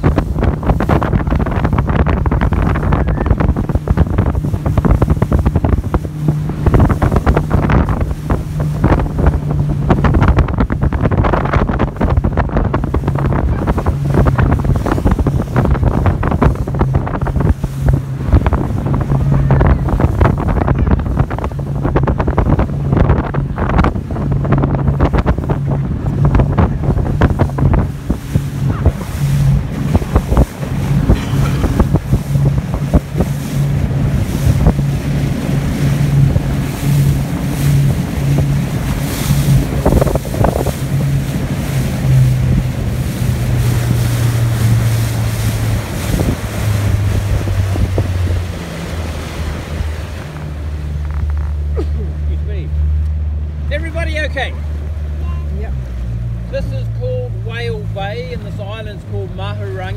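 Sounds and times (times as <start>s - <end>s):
motorboat engine humming: 0.0s - 59.9s
water splashing against boat: 0.0s - 59.9s
wind buffeting microphone: 0.0s - 59.9s.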